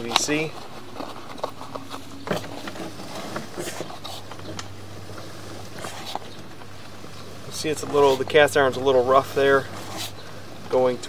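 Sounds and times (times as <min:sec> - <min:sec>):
cable clicks and scuffs: 0:00.0 - 0:06.7
steady low hum: 0:00.0 - 0:11.0.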